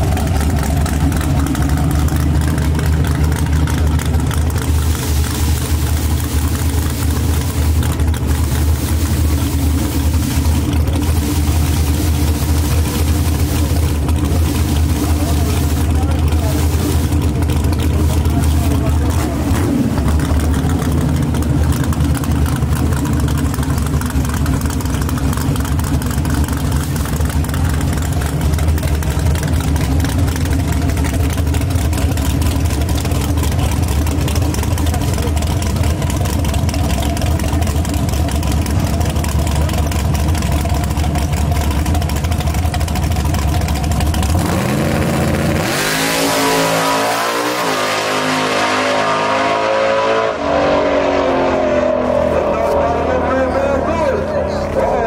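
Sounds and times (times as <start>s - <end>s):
drag car engine idling and accelerating: 0.0s - 55.0s.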